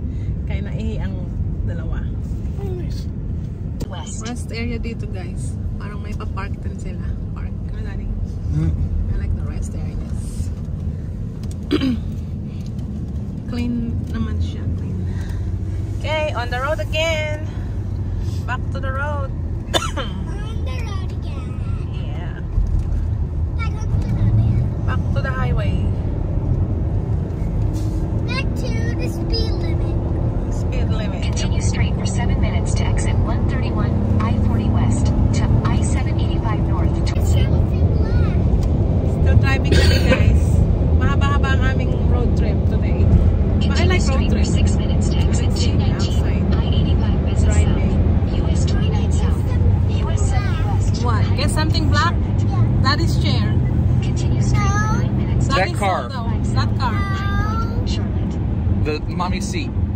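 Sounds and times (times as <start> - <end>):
car road and engine rumble: 0.0 - 59.9
people talking: 0.5 - 3.1, 3.8 - 10.5, 13.5 - 14.9, 16.0 - 17.5, 18.5 - 22.4, 23.6 - 25.9, 28.3 - 29.9, 30.7 - 38.4, 39.2 - 59.7.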